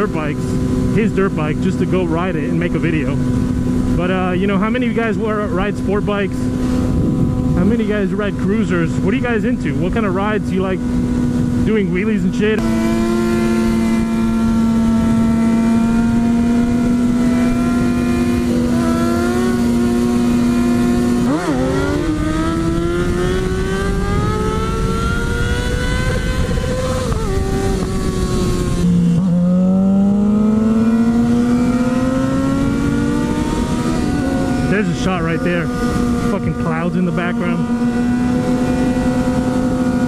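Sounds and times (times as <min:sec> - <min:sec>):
motorcycle engine revving: 0:00.0 - 0:40.0
wind rushing: 0:06.4 - 0:08.6.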